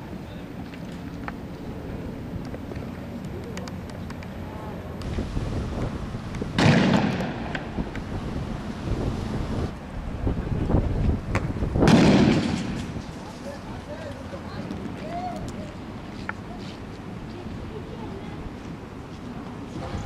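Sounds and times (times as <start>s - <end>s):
loud gunshot bangs: 6.6s - 7.7s, 11.8s - 13.0s.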